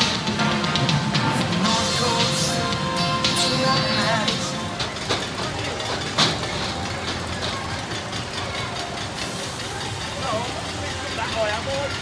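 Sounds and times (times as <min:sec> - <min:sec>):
faint music: 0:00.0 - 0:12.0
roller coaster clanks: 0:00.0 - 0:12.0
roller coaster train rumbling: 0:00.0 - 0:12.0
voices: 0:00.0 - 0:12.0.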